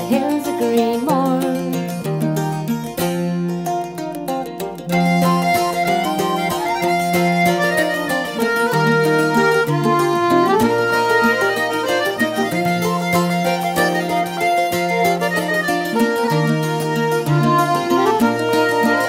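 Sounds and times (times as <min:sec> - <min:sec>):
fiddle melody: 0:00.0 - 0:19.0
plucked strings accompaniment: 0:00.0 - 0:19.0.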